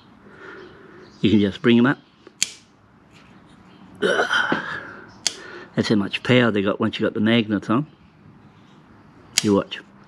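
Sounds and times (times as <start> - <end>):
magnets clicking against metal: 2.4 - 2.7.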